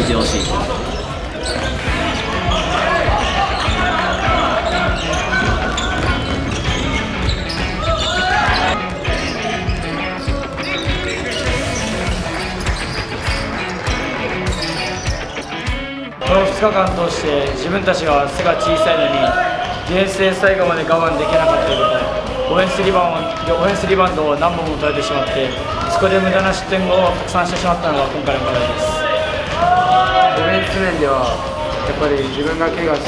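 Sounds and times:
background music: 0:00.0 - 0:33.0
players' voices: 0:00.0 - 0:33.0.

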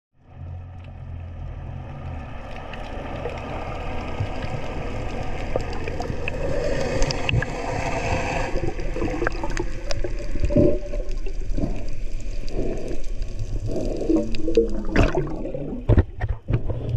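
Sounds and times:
underwater rushing and gurgling: 0:00.2 - 0:16.9
bubbly gurgles: 0:02.0 - 0:16.9.

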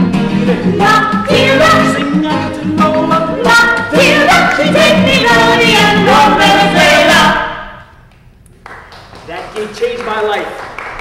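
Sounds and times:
group of voices singing: 0:00.0 - 0:07.8.

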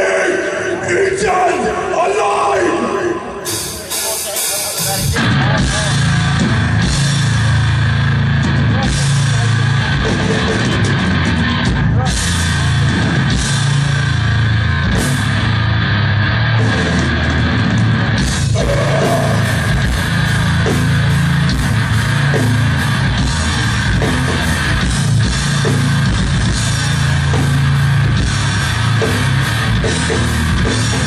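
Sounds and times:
heavy metal band playing live: 0:00.0 - 0:31.0.

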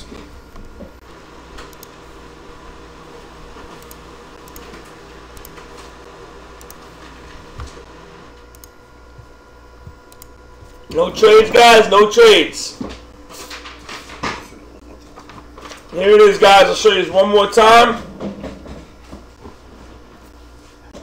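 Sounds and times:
electrical hum: 0:00.0 - 0:21.0.

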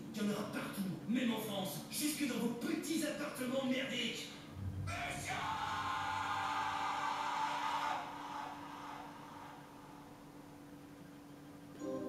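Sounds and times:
musical chord from television: 0:11.7 - 0:12.0.

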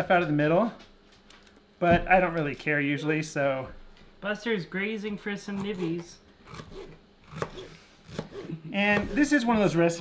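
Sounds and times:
knife slicing pepper: 0:05.5 - 0:09.5.

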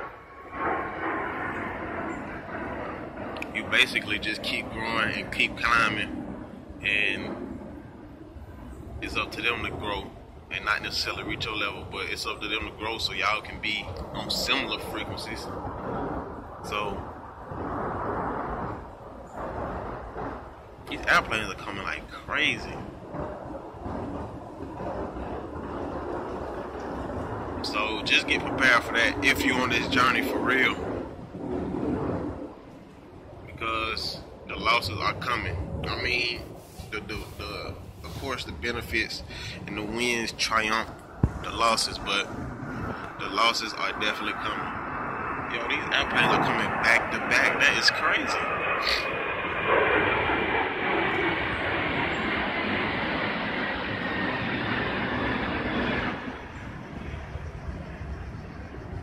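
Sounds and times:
airplane rumble overhead: 0:00.0 - 0:59.0.

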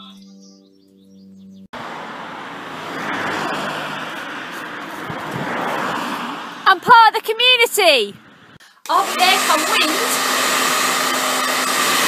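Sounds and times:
background music held notes: 0:00.0 - 0:01.7
passing cars: 0:01.6 - 0:12.0.

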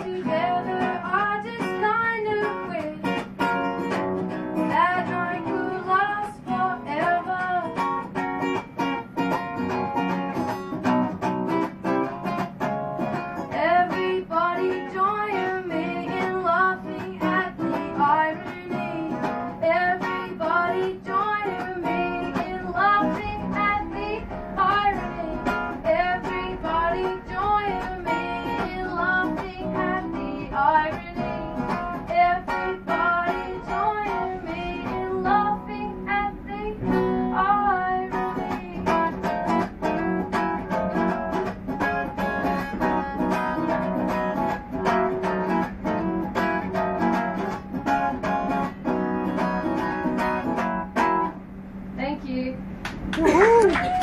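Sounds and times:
woman singing: 0:00.0 - 0:03.5, 0:04.6 - 0:08.1, 0:13.4 - 0:39.7
guitar strumming: 0:00.0 - 0:51.9.

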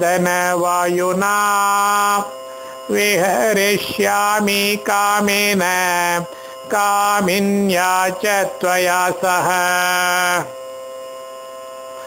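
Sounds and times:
man chanting: 0:00.0 - 0:10.6
steady drone of fixed tones: 0:00.0 - 0:12.0.

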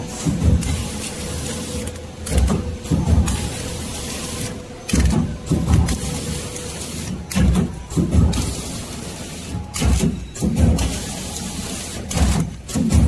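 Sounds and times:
machine motor hum with whine: 0:00.0 - 0:13.0.

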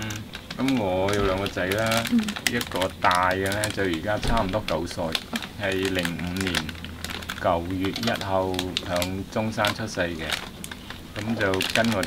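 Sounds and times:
man speaking: 0:00.0 - 0:06.8, 0:07.4 - 0:10.4, 0:11.2 - 0:12.0
snack wrapper crinkling: 0:00.0 - 0:12.0.

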